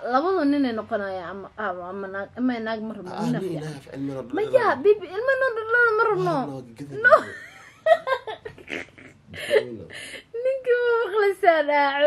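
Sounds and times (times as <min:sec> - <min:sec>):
person laughing: 0:03.1 - 0:03.8, 0:06.2 - 0:09.9
person breathing: 0:09.3 - 0:10.4.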